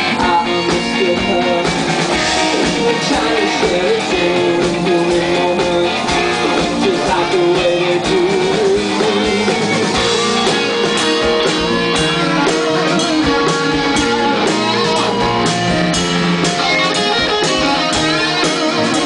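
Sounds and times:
drum beat: 0:00.0 - 0:19.0
rock band playing: 0:00.0 - 0:19.0.

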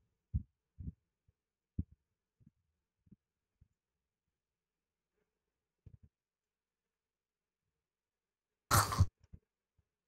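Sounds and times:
soft low thumps: 0:00.3 - 0:03.2.

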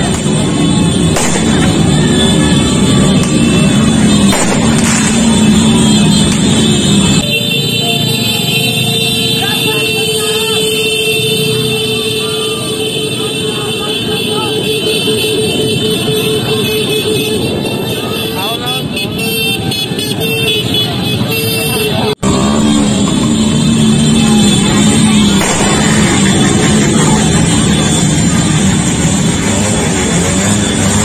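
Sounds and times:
horn blaring: 0:00.0 - 0:31.0
motorcycle engines running: 0:00.0 - 0:31.0.

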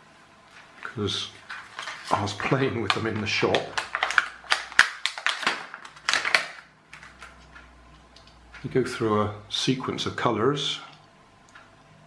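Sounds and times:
plastic packaging crackling: 0:00.5 - 0:07.6.

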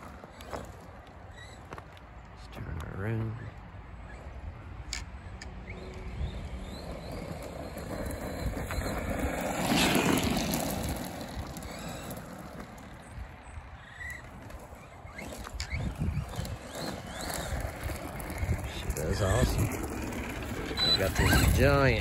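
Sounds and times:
toy truck driving over gravel: 0:00.0 - 0:22.0.

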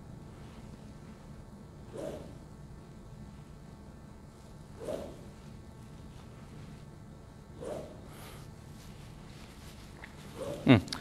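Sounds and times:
low room hum: 0:00.0 - 0:11.0
golf club swish: 0:01.8 - 0:02.5, 0:04.5 - 0:06.9, 0:07.6 - 0:10.6.

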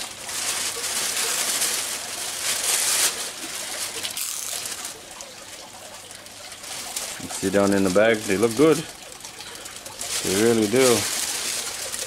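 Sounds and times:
thin plastic bag crinkling: 0:00.0 - 0:12.0.

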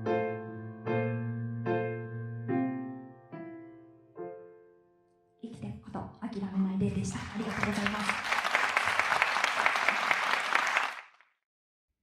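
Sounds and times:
audience applauding: 0:06.9 - 0:11.4.

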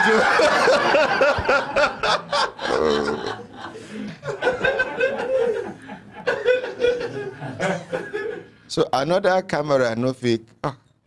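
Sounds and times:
people laughing: 0:00.0 - 0:08.6.

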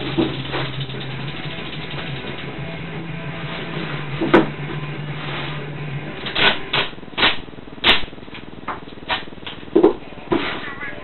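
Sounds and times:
adhesive tape ripping: 0:06.2 - 0:08.1.

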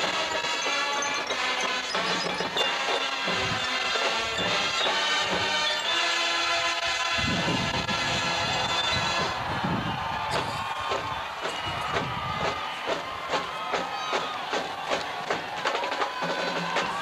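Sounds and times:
crowd cheering: 0:00.0 - 0:17.0
drumline cadence: 0:00.0 - 0:17.0
brass chord: 0:02.7 - 0:09.5.

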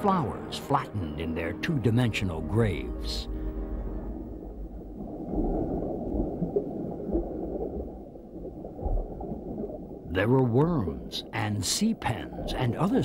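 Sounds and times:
deep muffled underwater rumbling: 0:02.9 - 0:11.4.

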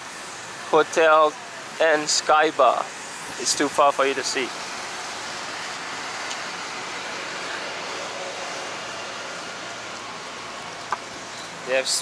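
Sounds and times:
road traffic hiss: 0:00.0 - 0:12.0.

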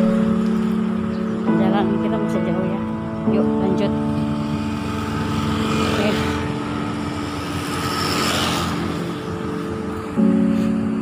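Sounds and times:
steady background tones: 0:00.0 - 0:11.0
vehicle passing: 0:00.0 - 0:11.0.

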